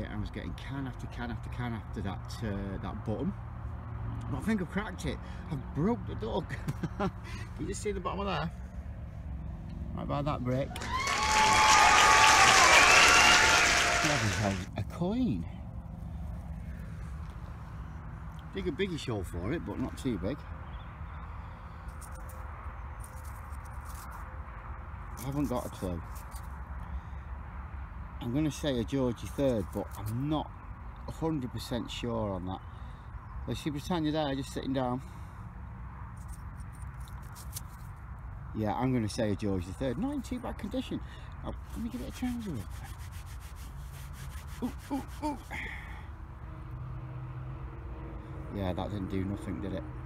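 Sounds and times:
fingers handling a coin: 21.9s - 24.3s, 25.1s - 26.6s, 36.1s - 38.0s
fingers scratching soil off coin: 23.0s - 24.3s, 25.1s - 26.6s, 29.3s - 30.3s, 36.1s - 38.0s, 41.5s - 45.6s.

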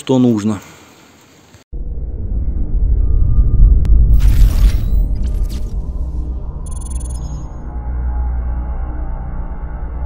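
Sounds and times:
low rumbling sound effect: 1.7s - 10.0s.

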